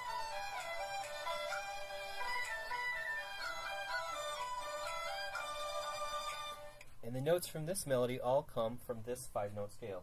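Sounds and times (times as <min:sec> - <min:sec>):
pentatonic folk melody: 0:00.0 - 0:06.8.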